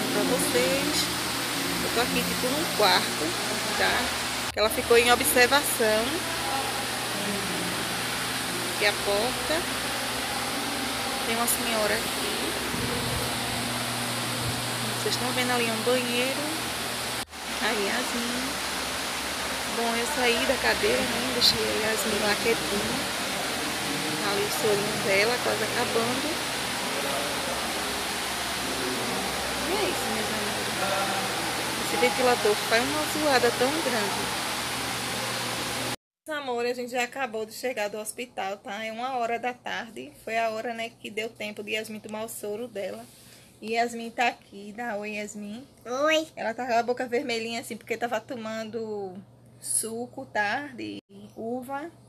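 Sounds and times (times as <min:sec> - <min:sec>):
electric fan running: 0:00.0 - 0:36.0.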